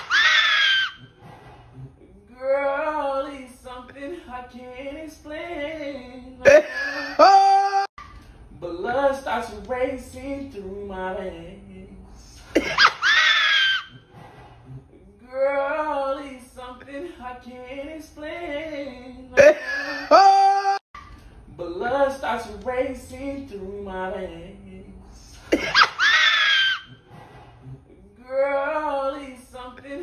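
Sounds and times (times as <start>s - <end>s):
man's falsetto shriek: 0.0s - 1.0s, 13.0s - 13.9s, 26.0s - 26.9s
man singing high falsetto shriek: 0.0s - 1.1s.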